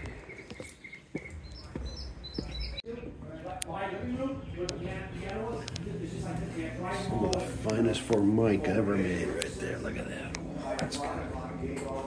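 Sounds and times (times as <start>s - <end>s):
footsteps on wooden planks: 0.0s - 3.2s
songbirds chirping: 0.0s - 12.0s.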